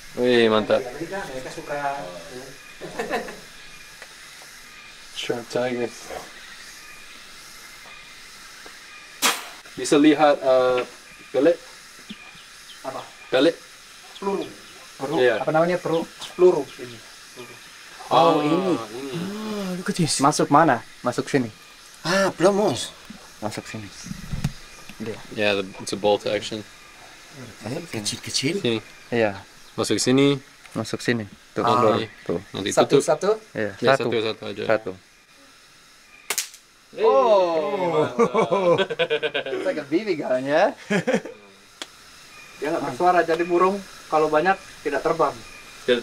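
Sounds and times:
low steady hiss: 0:00.0 - 0:46.0
air rifle shot: 0:09.2 - 0:09.6.

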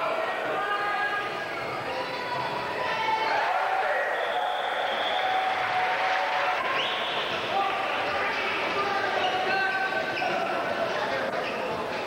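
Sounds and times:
crowd chatter and shouts: 0:00.0 - 0:12.0.

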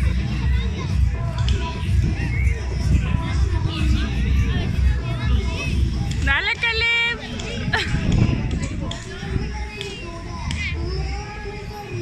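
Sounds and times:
steady low rumble: 0:00.0 - 0:11.2
children calling and chattering: 0:00.0 - 0:12.0.

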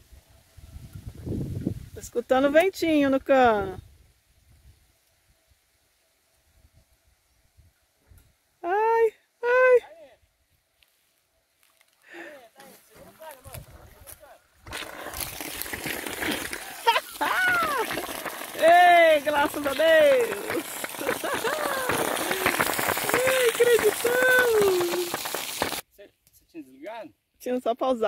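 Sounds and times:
water gushing from shower outlet: 0:14.7 - 0:25.8.

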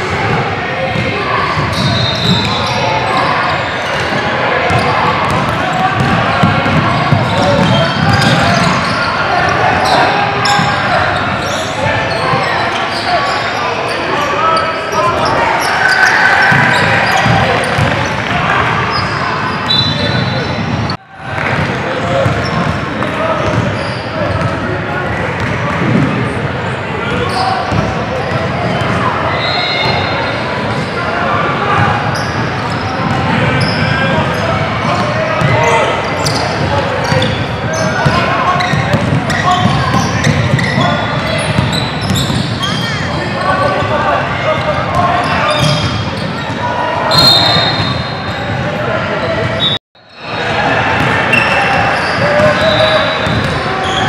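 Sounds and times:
voices echoing in a hall: 0:00.0 - 0:54.0
basketball bouncing on wooden court: 0:04.7 - 0:08.8, 0:38.0 - 0:42.6, 0:53.2 - 0:53.6.

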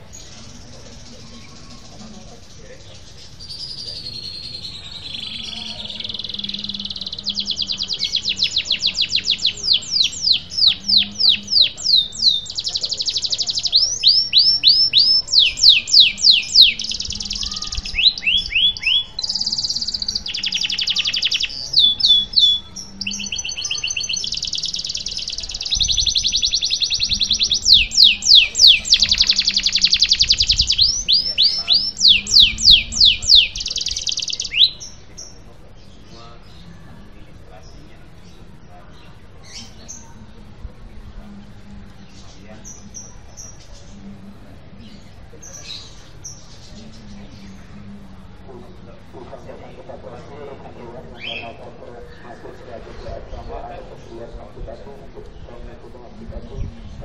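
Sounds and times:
canary singing: 0:00.0 - 0:57.0.

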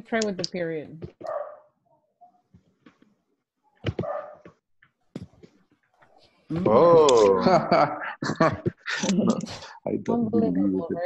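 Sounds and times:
dog barking: 0:01.2 - 0:02.4, 0:04.0 - 0:04.4.

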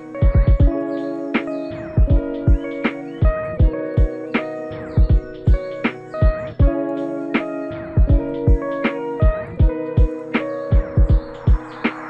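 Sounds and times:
background music with held notes: 0:00.0 - 0:12.0
deep drum thumps: 0:00.2 - 0:00.8, 0:02.0 - 0:04.2, 0:05.0 - 0:06.8, 0:08.0 - 0:11.7.

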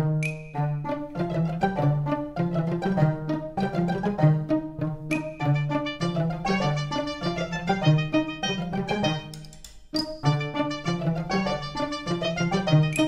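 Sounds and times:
bouncy string music: 0:00.0 - 0:13.0.

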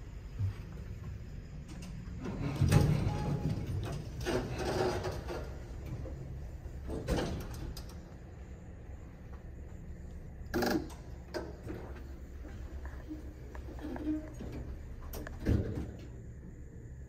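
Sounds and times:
elevator doors sliding open: 0:01.6 - 0:08.7, 0:10.4 - 0:16.4
elevator door clunk: 0:01.7 - 0:08.3.

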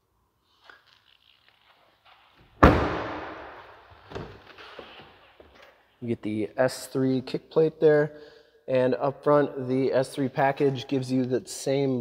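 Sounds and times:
car door shutting: 0:02.6 - 0:03.2.

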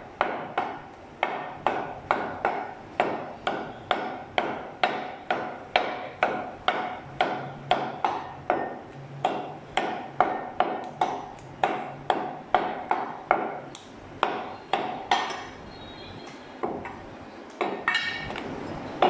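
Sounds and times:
cleaver chopping on wooden block: 0:00.2 - 0:13.6.

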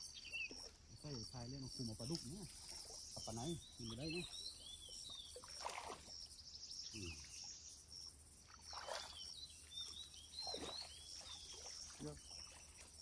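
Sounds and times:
water sloshing softly: 0:00.0 - 0:13.0.

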